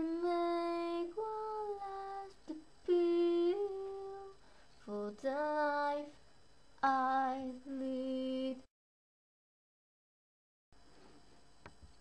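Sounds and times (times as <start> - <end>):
girl singing wordless notes: 0.0 - 8.7.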